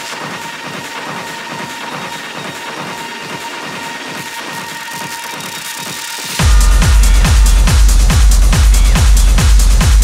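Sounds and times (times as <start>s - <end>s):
steady high tone: 0.0s - 9.2s
clattering rhythmic techno texture: 0.0s - 10.0s.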